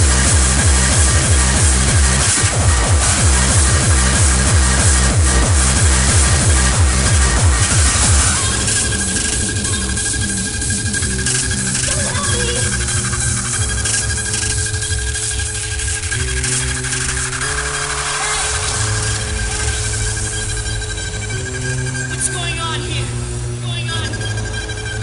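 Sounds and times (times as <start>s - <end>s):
steady high synth tone: 0.0s - 25.0s
sustained bass and synth notes: 0.0s - 25.0s.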